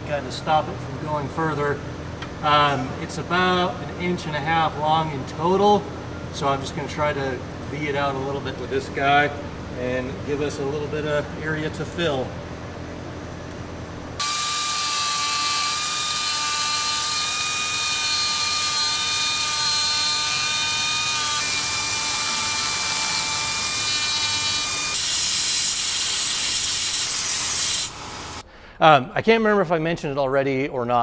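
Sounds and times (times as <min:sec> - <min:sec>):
rotary grinding tool whining: 0:14.2 - 0:28.4.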